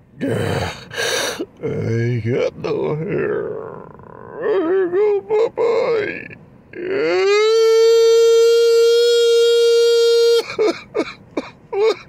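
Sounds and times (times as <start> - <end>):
man sobbing and wailing: 0.2 - 12.0.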